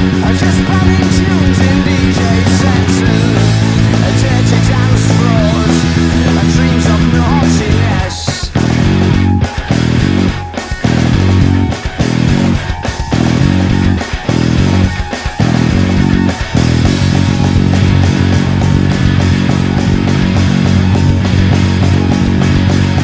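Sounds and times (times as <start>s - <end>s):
electric bass guitar: 0.0s - 23.0s
rock band backing track: 0.0s - 23.0s.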